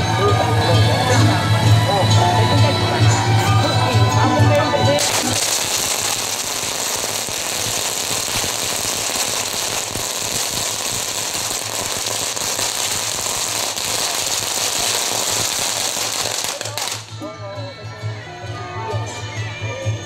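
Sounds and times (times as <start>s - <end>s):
firecrackers crackling rapidly: 3.7s - 17.3s.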